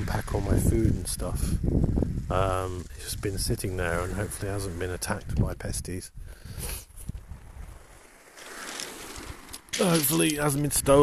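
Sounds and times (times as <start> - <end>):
wind rumble on microphone: 0.0 - 8.1
small waves on shingle beach: 3.8 - 5.0, 7.4 - 11.0.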